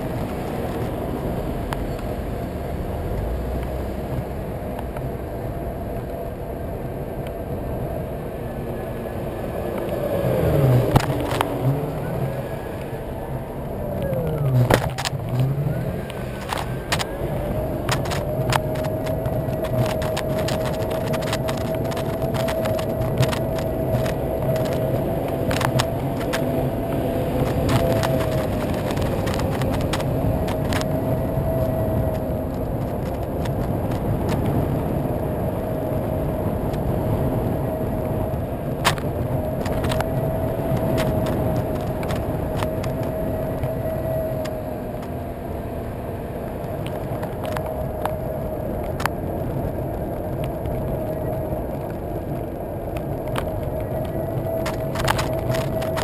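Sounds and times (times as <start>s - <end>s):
tyre and road rumble: 0.0s - 56.0s.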